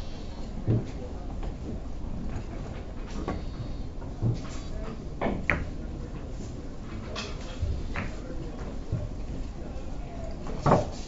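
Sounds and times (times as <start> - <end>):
billiard balls clicking: 5.2 - 5.8, 7.4 - 8.2.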